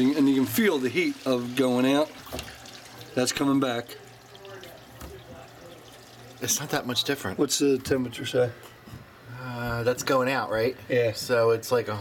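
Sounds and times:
water rushing through pipes: 0:00.0 - 0:07.2.

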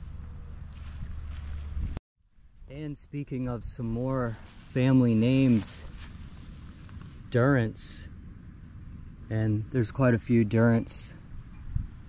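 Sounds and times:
insects chirping: 0:00.0 - 0:12.0
low steady rumble: 0:00.0 - 0:12.0.

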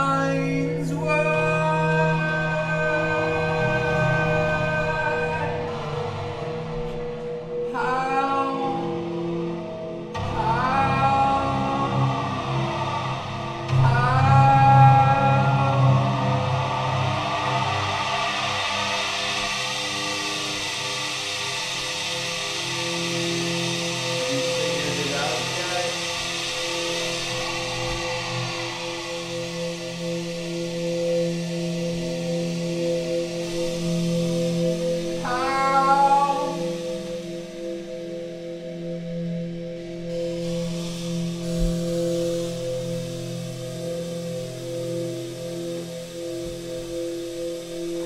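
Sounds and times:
hiss-like wash: 0:11.4 - 0:48.0.

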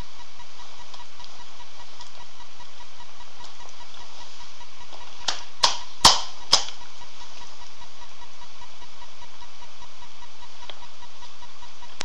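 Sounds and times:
low pulsing hum: 0:00.0 - 0:12.0
sharp knocks: 0:05.6 - 0:06.8.

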